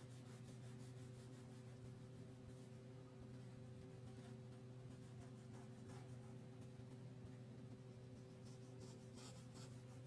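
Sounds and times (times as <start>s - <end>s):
steady low hum: 0.0s - 10.0s
crayon scratching on paper: 3.8s - 6.4s, 8.0s - 10.0s.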